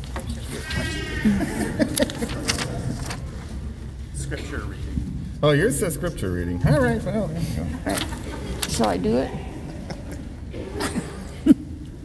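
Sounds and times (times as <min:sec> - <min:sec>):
murmur of voices: 0:00.0 - 0:12.0
person laughing: 0:01.1 - 0:02.8.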